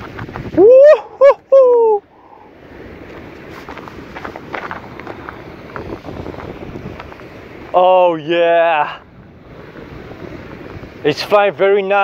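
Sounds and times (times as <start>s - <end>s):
wind buffeting microphone: 0.0s - 12.0s
crackles and rustles: 3.0s - 7.8s.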